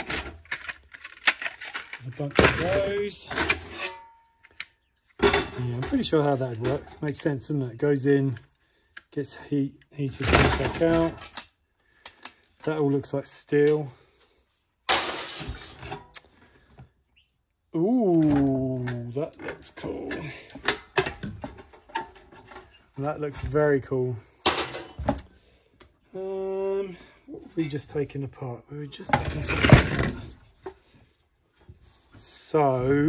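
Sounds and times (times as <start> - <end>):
rustling scrape of metal: 0.0 - 4.6, 14.9 - 16.2.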